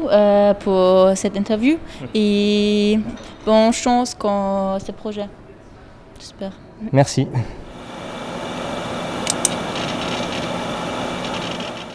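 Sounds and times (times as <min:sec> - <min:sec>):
mechanical whirring: 0:07.7 - 0:11.9
sharp clicks: 0:09.2 - 0:10.4.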